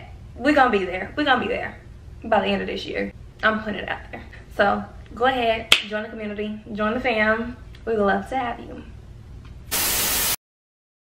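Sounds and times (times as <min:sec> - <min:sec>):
burst of static hiss: 0:09.7 - 0:10.4.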